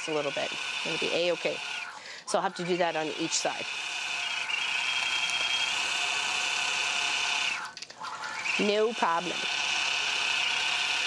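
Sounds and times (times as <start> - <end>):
quilting machine whirring: 0.0 - 11.0.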